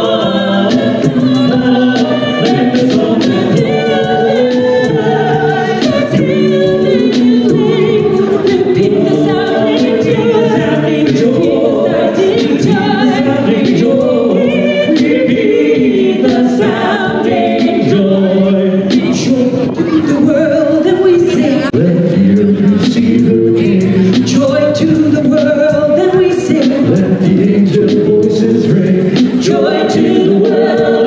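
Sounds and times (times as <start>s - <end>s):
a cappella group singing: 0.0s - 31.0s.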